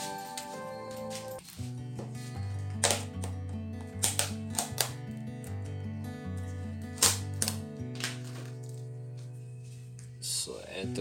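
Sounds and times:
plastic tubs clicking: 0:02.8 - 0:05.0.

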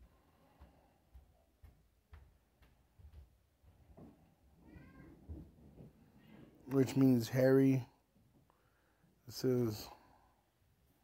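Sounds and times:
cat meowing: 0:04.6 - 0:05.2.

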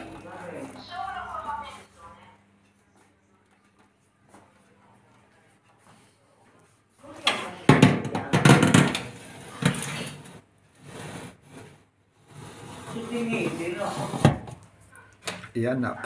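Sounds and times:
metal baking tray scraping: 0:08.9 - 0:14.6.

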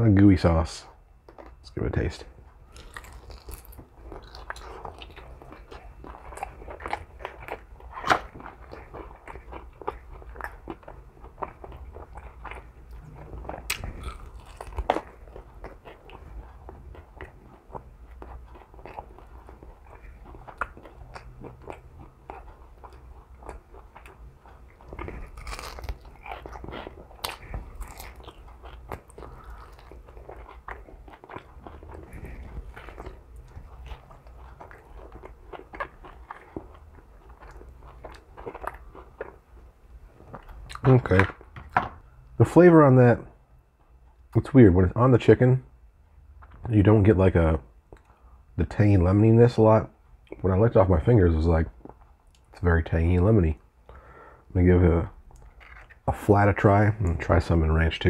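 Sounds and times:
person chewing food: 0:01.0 - 0:01.6, 0:02.4 - 0:42.3, 0:47.9 - 0:48.4, 0:55.2 - 0:56.1.

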